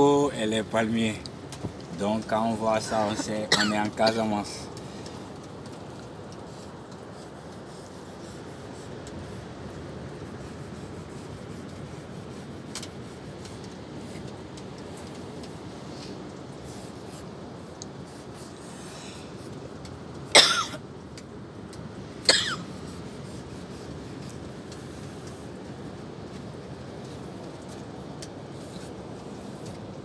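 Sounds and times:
low background noise: 0.0s - 30.0s
person coughing: 2.9s - 4.3s, 20.3s - 20.8s, 22.3s - 22.7s
pen scratching on cloth: 5.4s - 19.7s, 22.6s - 25.6s, 27.0s - 29.9s.

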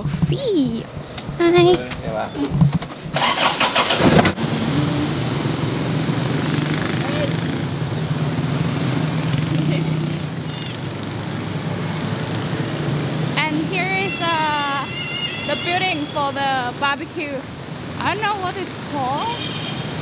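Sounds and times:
road noise: 0.0s - 20.0s
car engine drone: 1.8s - 16.5s.

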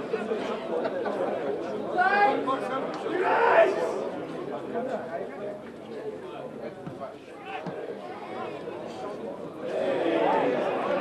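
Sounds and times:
people talking over each other: 0.0s - 11.0s
outburst of voices: 2.0s - 4.1s.

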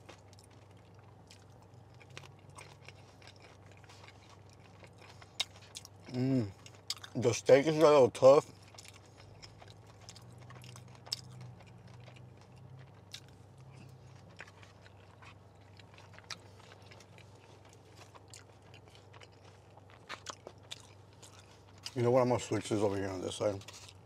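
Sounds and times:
person chewing: 0.0s - 22.3s, 23.6s - 24.0s.

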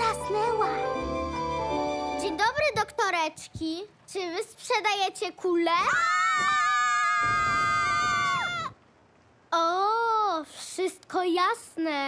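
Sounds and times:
cartoon child's high-pitched cry: 5.7s - 8.8s.

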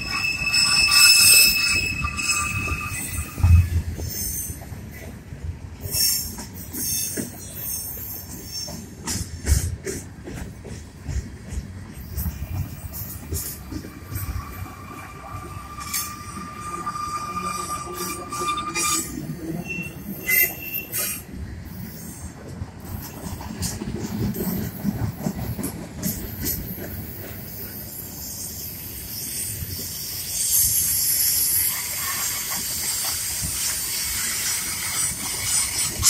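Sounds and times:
wheel squeal: 0.0s - 4.6s, 12.1s - 21.2s
train wheels rumbling on rail: 0.0s - 36.0s.

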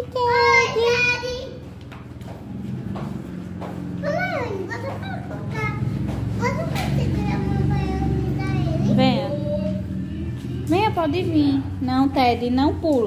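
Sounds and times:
steady low hum: 1.5s - 13.0s.

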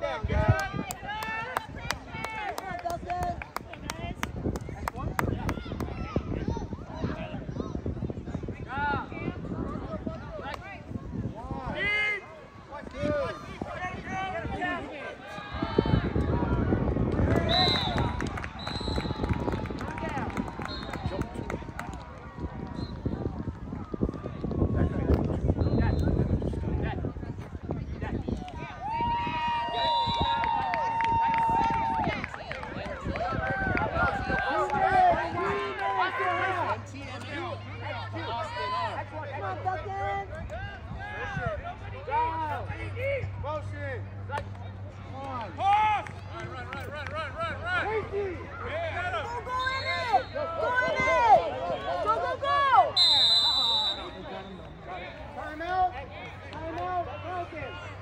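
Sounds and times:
high whistle blast: 53.0s - 54.8s.

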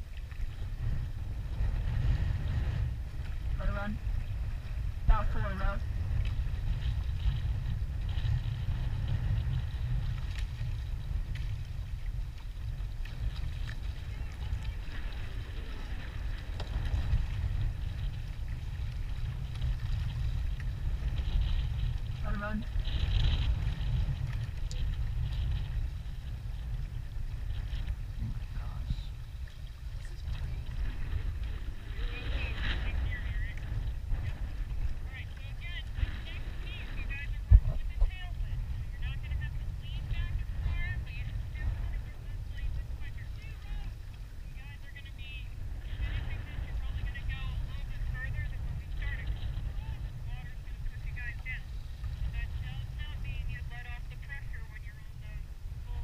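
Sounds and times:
water against hull: 0.0s - 56.0s
wind rumbling on microphone: 0.0s - 56.0s.

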